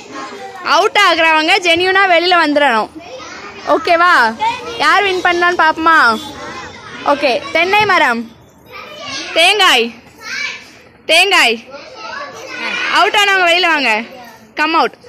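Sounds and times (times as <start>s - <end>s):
children calling and chanting: 0.0s - 15.0s.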